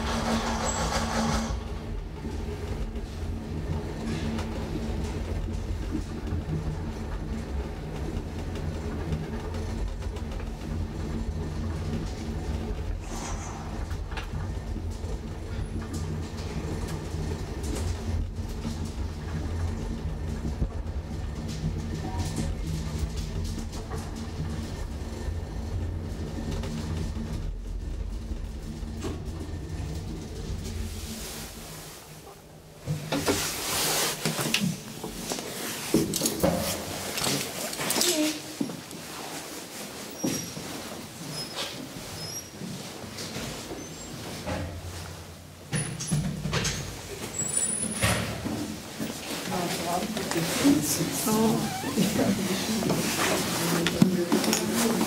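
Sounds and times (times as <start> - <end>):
elevator clatter: 0.0 - 31.4
elevator rumble and hum: 0.0 - 55.0.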